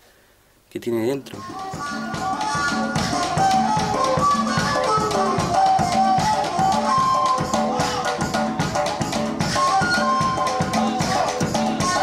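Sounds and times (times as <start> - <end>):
fast drum and percussion strikes: 1.3 - 12.0
band playing melody: 1.4 - 12.0.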